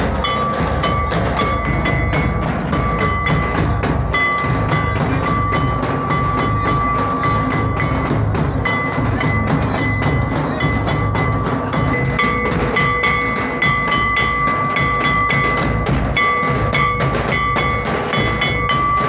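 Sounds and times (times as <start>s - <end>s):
bass drum beating: 0.0s - 19.0s
hand drum beating: 0.0s - 19.0s
kettle drum beating: 0.0s - 19.0s.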